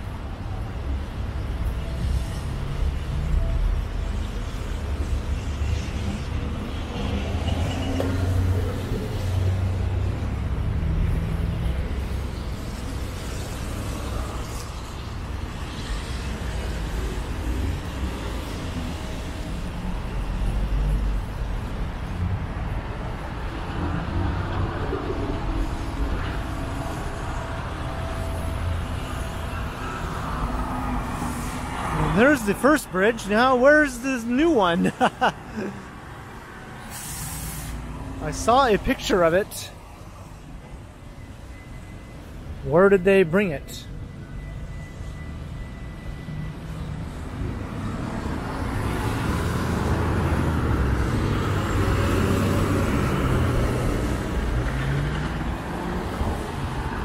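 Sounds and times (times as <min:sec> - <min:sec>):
traffic on a wet street: 0:00.0 - 0:57.0.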